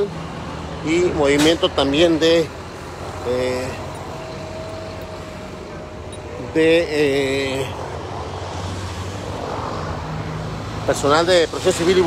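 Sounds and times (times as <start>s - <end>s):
vehicle engine idling: 2.2s - 8.2s.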